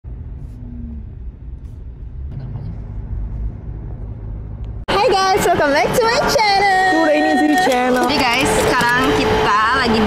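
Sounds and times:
car engine: 0:00.0 - 0:10.0
road noise: 0:00.0 - 0:10.0.

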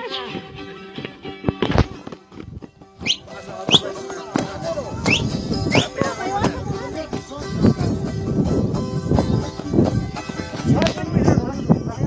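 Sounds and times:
crowd voices: 0:00.0 - 0:12.0
music with steady tones: 0:00.0 - 0:12.0
sharp rising whistles: 0:03.0 - 0:03.8.

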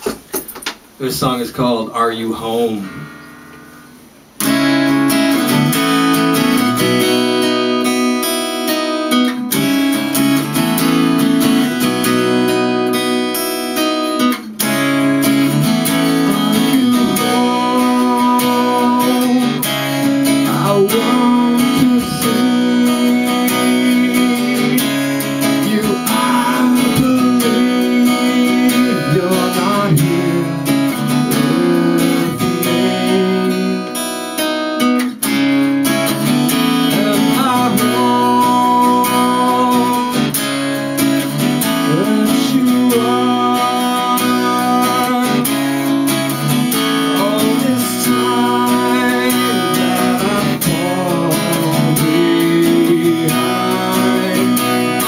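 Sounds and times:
acoustic guitar strumming: 0:00.0 - 0:55.0.

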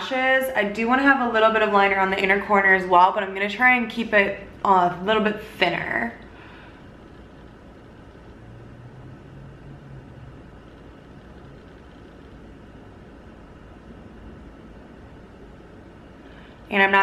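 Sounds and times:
faint low hum: 0:00.0 - 0:17.0
room noise hiss: 0:00.0 - 0:17.0.

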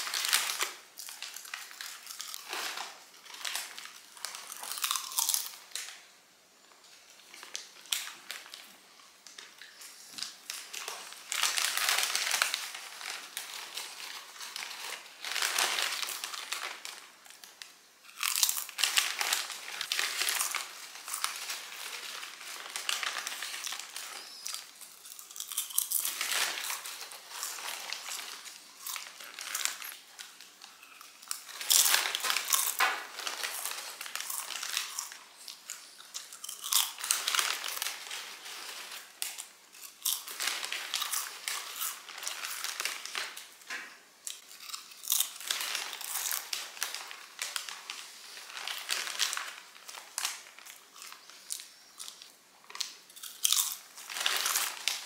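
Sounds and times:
crunchy chewing: 0:00.0 - 0:05.6, 0:18.1 - 0:18.8, 0:23.4 - 0:32.8, 0:33.4 - 0:37.8, 0:38.5 - 0:42.6, 0:44.3 - 0:46.6, 0:50.3 - 0:54.7
plastic wrapper crinkling: 0:00.0 - 0:06.1, 0:07.1 - 0:55.0.

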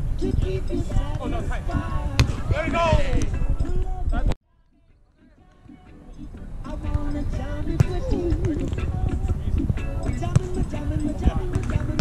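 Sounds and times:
volleyball slap: 0:02.1 - 0:02.5, 0:11.5 - 0:12.0.

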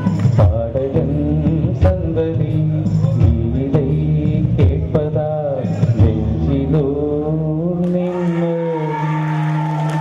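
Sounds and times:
man singing into a microphone: 0:00.0 - 0:09.8.

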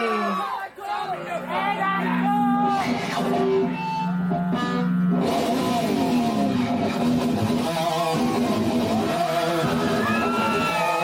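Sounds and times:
bass guitar: 0:01.2 - 0:11.0
distorted electric guitar riff: 0:01.2 - 0:11.0.

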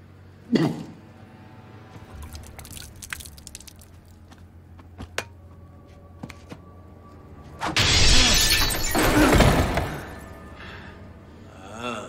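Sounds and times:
window glass smashing: 0:07.8 - 0:10.3.

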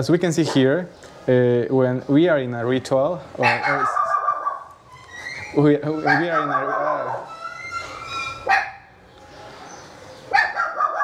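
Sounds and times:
dog barking: 0:03.4 - 0:04.7, 0:06.0 - 0:07.3, 0:08.4 - 0:08.9, 0:10.3 - 0:11.0.

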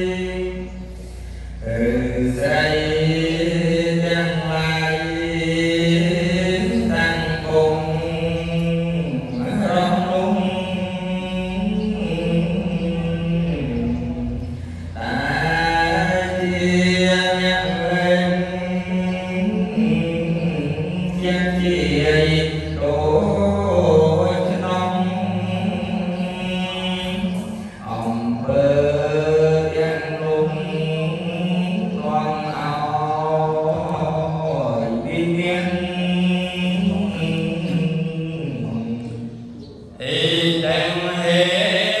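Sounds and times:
amplified chanting voice: 0:00.0 - 0:42.0.

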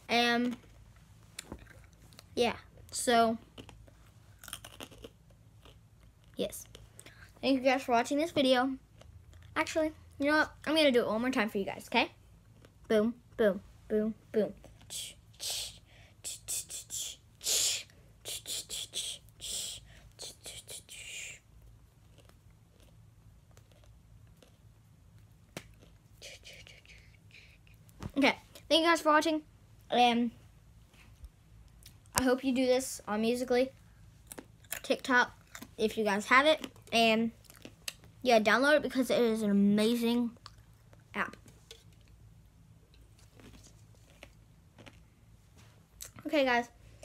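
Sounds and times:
chewing: 0:03.4 - 0:07.1, 0:21.8 - 0:26.7, 0:34.2 - 0:35.8, 0:36.6 - 0:38.1, 0:40.4 - 0:41.1, 0:42.9 - 0:45.1
crunchy snack clicks: 0:03.5 - 0:06.8
person whispering rhythmic syllables: 0:14.4 - 0:21.5, 0:26.1 - 0:29.2.

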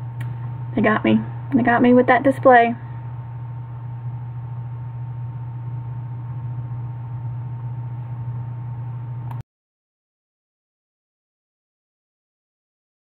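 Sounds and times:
low hum: 0:00.0 - 0:09.4.

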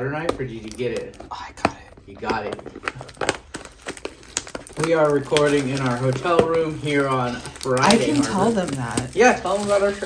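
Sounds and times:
plastic shrink-wrap crinkling: 0:00.4 - 0:10.0
person speaking: 0:04.7 - 0:10.0.

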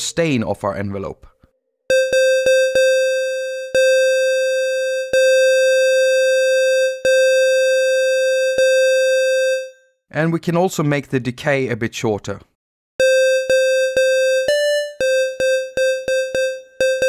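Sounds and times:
square-wave synth tone: 0:01.9 - 0:09.8, 0:13.0 - 0:17.0.

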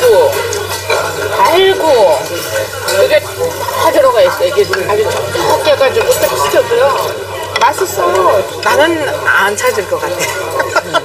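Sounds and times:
utensils clinking metal bowl: 0:00.0 - 0:11.0.

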